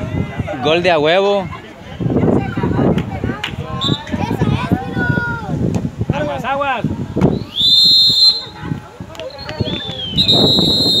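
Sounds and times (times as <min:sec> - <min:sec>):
referee's whistle blast: 0:07.4 - 0:08.6, 0:09.3 - 0:11.0.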